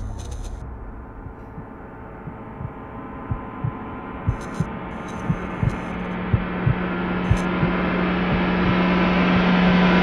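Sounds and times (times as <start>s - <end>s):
drone: 0.0s - 10.0s
low hum tone: 0.0s - 10.0s
heartbeat-style double thump: 1.2s - 9.9s.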